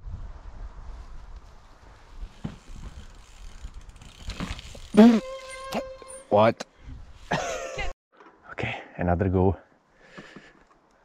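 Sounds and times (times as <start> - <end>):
bike freewheel hub ticking: 2.8 - 6.2.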